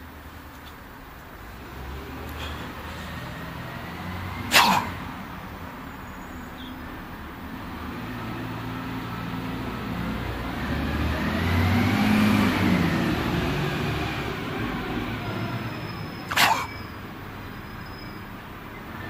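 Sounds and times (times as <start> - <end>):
distant traffic drone: 0.0 - 19.0
road vehicle passing: 0.8 - 19.0.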